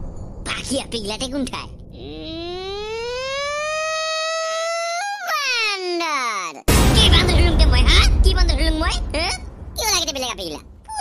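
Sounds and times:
high-pitched wailing cry: 2.2s - 5.7s.

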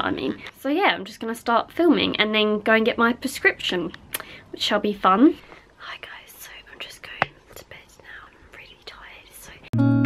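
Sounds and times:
woman whispering: 5.8s - 9.8s
music: 9.8s - 10.0s.

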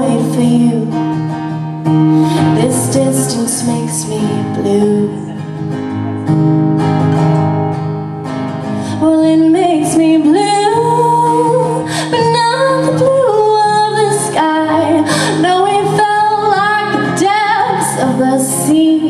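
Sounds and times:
woman singing: 0.0s - 5.7s, 8.8s - 19.0s
acoustic guitar strumming: 0.0s - 19.0s.

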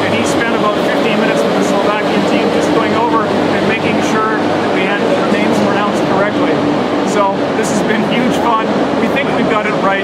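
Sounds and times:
person talking: 0.0s - 10.0s
steady low background noise: 0.0s - 10.0s.

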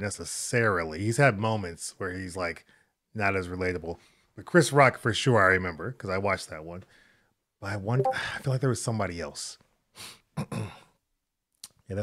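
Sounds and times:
man speaking: 7.6s - 9.5s
man clearing throat: 10.4s - 10.9s.

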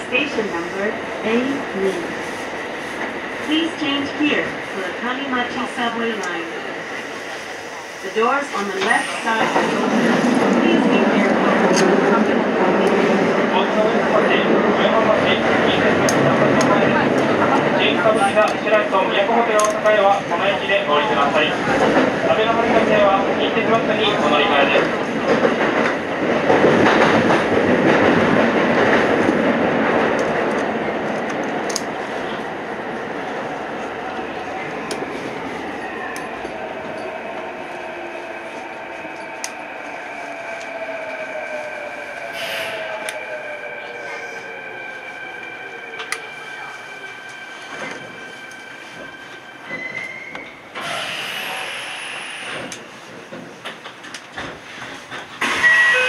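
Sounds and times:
train rolling noise: 0.0s - 56.0s.

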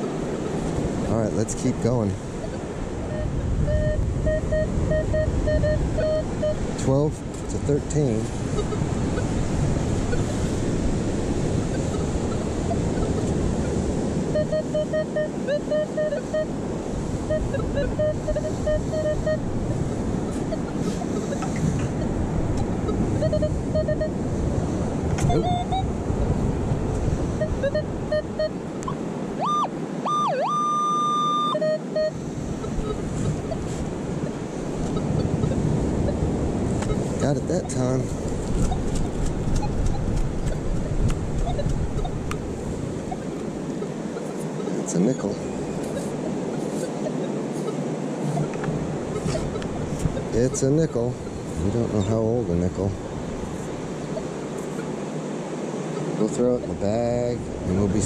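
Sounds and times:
surf: 0.0s - 58.0s
wind: 0.0s - 58.0s
metal detector rising tone: 2.4s - 6.6s, 14.3s - 16.6s, 17.2s - 19.5s, 20.2s - 24.2s, 25.2s - 25.9s, 27.4s - 38.0s
metal detector beeps: 2.4s - 8.9s, 11.5s - 24.2s, 25.2s - 26.0s, 27.4s - 42.2s, 43.1s - 52.2s.

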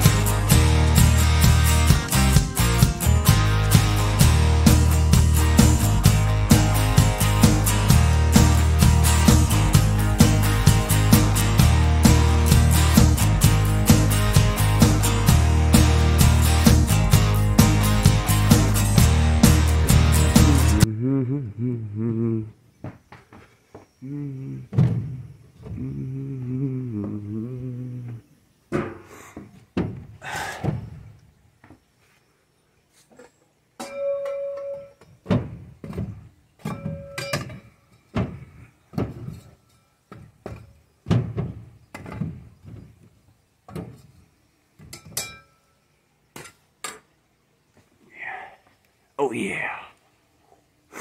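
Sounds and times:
background music: 0.0s - 20.9s.

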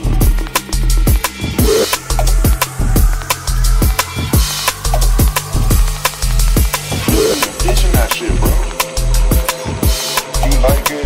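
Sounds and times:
drum and bass music: 0.0s - 11.0s
fast drum pattern: 0.0s - 11.0s
heavy deep bass: 0.0s - 11.0s.

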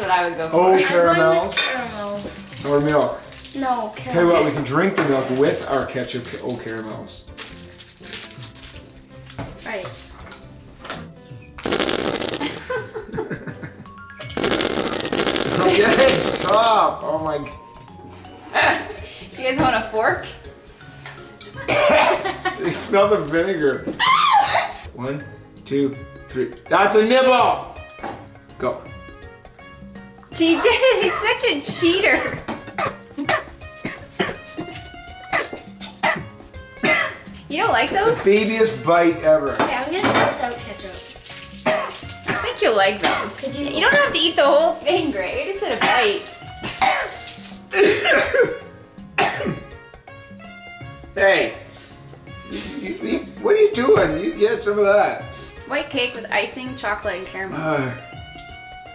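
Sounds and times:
background music: 0.0s - 58.9s
squeeze bottle squirting and sputtering: 11.6s - 12.7s, 14.2s - 16.7s, 40.4s - 42.5s, 45.7s - 47.8s
people laughing: 12.4s - 13.9s, 21.6s - 22.8s, 30.5s - 31.4s
man coughing: 21.6s - 22.2s, 32.2s - 37.2s, 46.7s - 48.6s, 49.2s - 49.7s.

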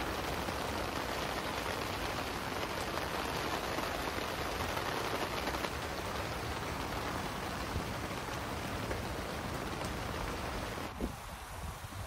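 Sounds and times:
rain on a tent: 0.0s - 12.0s.

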